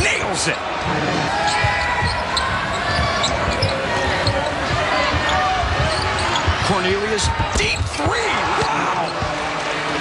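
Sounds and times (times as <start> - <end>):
arena crowd voices: 0.0 - 10.0
basketball dribbling thuds: 1.5 - 9.4.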